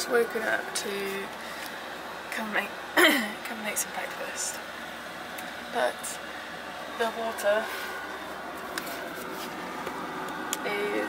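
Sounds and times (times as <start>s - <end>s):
steady room hum: 0.0s - 11.0s.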